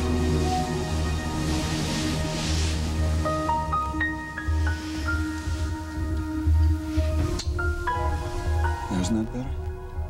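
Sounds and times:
slow synthesizer music: 0:00.0 - 0:10.0.

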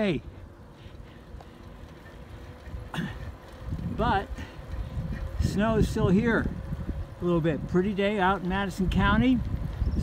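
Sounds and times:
wind rumble on microphone: 0:01.6 - 0:10.0.

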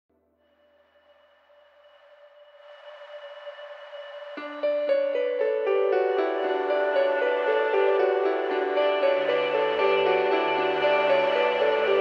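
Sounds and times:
airy synthesizer pad chord: 0:00.6 - 0:12.0.

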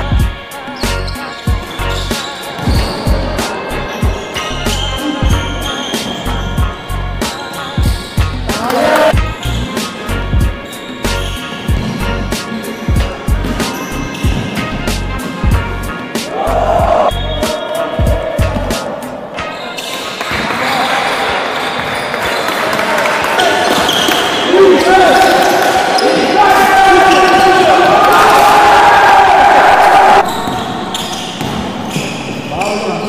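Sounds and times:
players' voices: 0:00.0 - 0:11.7, 0:16.2 - 0:29.9
hip-hop beat: 0:00.0 - 0:20.4
basketball bouncing on court: 0:02.6 - 0:03.2, 0:30.3 - 0:32.4.

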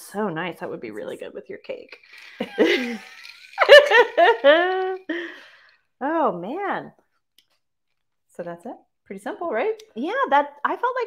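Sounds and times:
woman laughing heartily: 0:02.2 - 0:05.5.

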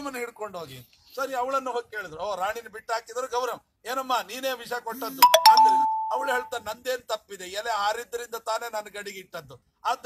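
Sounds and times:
man speaking: 0:03.9 - 0:06.8
metallic bell chime: 0:05.2 - 0:06.5.

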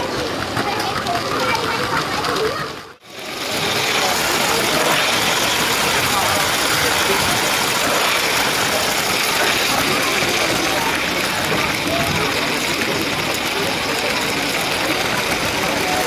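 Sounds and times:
crowd chatter: 0:00.0 - 0:16.0
toy train rattling and humming: 0:00.0 - 0:16.0.

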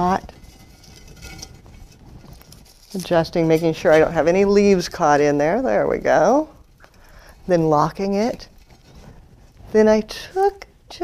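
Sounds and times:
light rustling: 0:00.0 - 0:11.0.

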